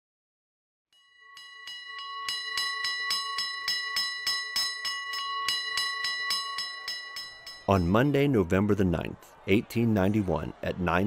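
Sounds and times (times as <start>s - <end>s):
alarm bell ringing rapidly: 1.0s - 8.4s.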